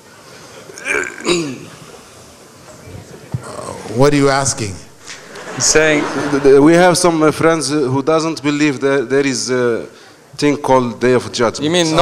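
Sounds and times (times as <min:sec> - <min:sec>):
faint voice murmuring: 0:00.4 - 0:04.0.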